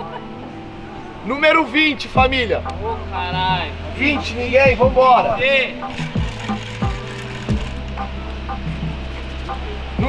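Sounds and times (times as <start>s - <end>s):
background music with deep bass: 0.0s - 10.0s.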